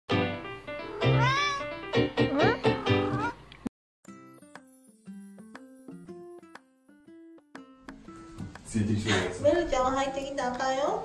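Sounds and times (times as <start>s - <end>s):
background music: 0.1s - 3.4s
cat meowing: 0.8s - 3.4s.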